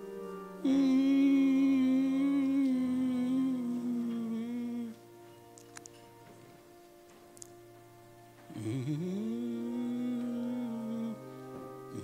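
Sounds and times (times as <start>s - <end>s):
person humming a long note: 0.0s - 5.2s, 8.4s - 12.0s
soft steady drone: 0.0s - 12.0s.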